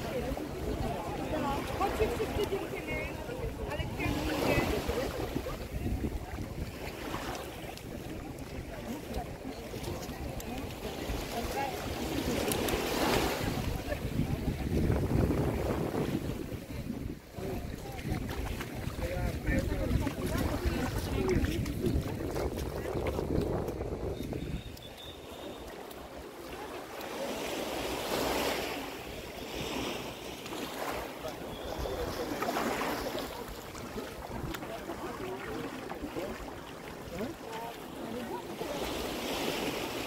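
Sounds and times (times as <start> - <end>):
wind buffeting microphone: 0.0 - 7.0, 10.2 - 24.8
people chatting: 0.0 - 24.6, 30.8 - 39.9
small waves lapping at shore: 0.0 - 40.0.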